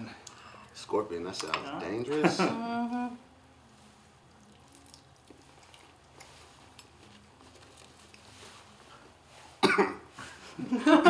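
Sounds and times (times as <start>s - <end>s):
person coughing: 9.6s - 10.1s.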